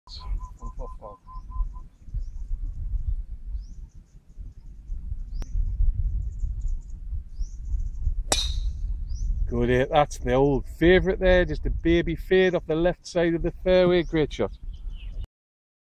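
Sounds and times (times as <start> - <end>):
small birds chirping: 0.1 - 9.5, 11.8 - 15.3
low rumble: 0.1 - 14.0.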